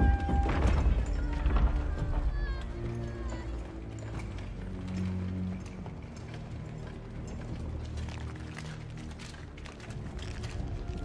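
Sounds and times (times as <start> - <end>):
film score low sustained notes: 0.0 - 11.0.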